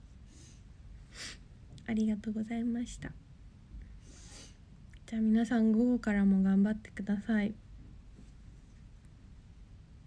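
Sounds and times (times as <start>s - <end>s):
faint breath: 0.2s - 1.5s, 3.9s - 4.7s
woman sniffling: 0.3s - 1.5s, 4.0s - 4.6s.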